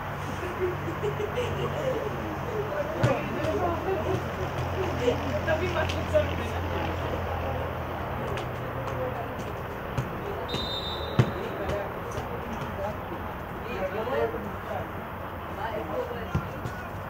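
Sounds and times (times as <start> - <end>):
distant voices: 0.4 - 17.0
ball being kicked: 3.0 - 4.8, 8.8 - 12.8, 16.3 - 16.9
referee's whistle: 10.5 - 11.6.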